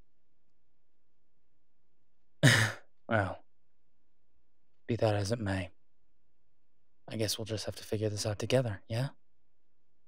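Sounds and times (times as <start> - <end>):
man sighing: 2.4 - 2.8.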